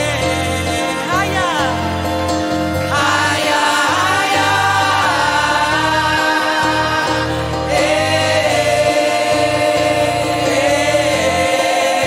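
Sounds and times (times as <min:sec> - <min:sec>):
group singing gospel: 0:00.0 - 0:12.0
keyboard accompaniment: 0:00.0 - 0:12.0.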